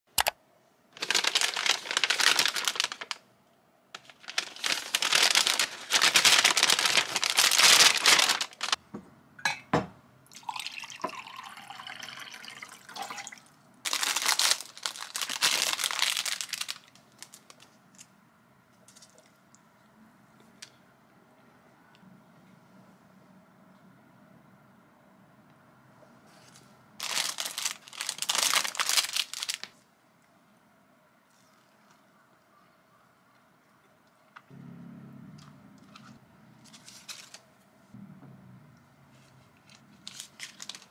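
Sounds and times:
paper and plastic crinkling: 1.0 - 3.2, 3.9 - 8.8, 13.9 - 18.1, 26.3 - 29.8, 35.8 - 37.5, 39.1 - 40.9.

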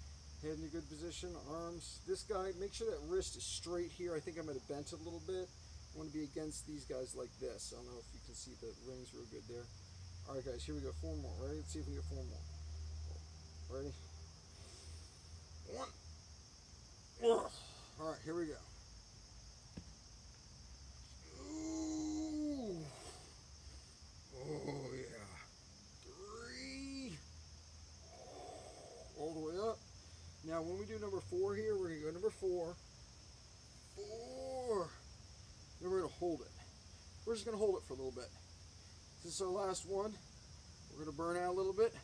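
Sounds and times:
man grunting and groaning: 17.2 - 18.0, 21.2 - 23.4, 24.3 - 27.2, 28.0 - 29.4, 33.9 - 35.0.

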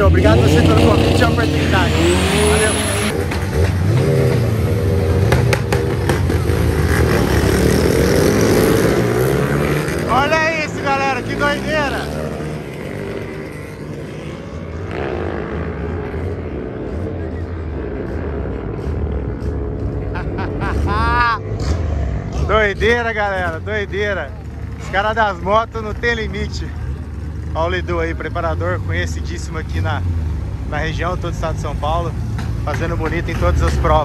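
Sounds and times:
motorcycle engines revving: 0.0 - 34.0.

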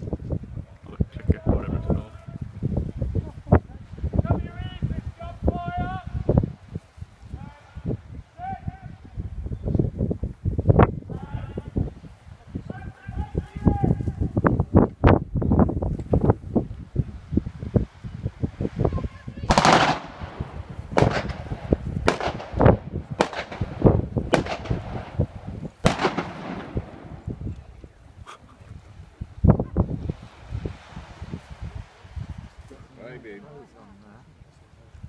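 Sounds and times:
sharp echoing bangs: 19.5 - 27.4.

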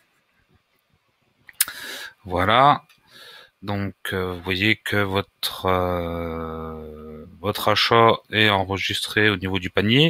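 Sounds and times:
breath drawn in: 1.6 - 2.2.

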